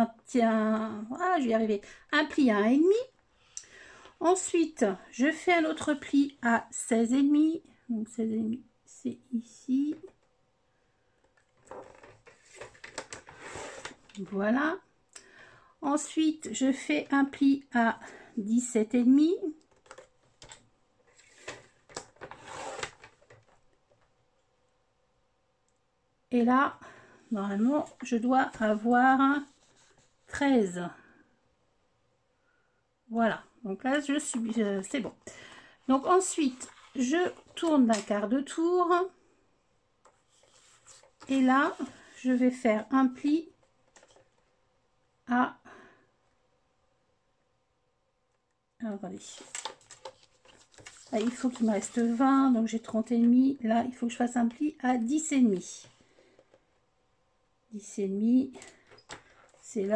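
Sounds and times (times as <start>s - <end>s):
paper rustling and sliding: 11.6s - 14.2s, 21.1s - 23.6s, 40.1s - 42.5s, 49.4s - 52.4s
crisp paper crackles: 49.2s - 52.3s.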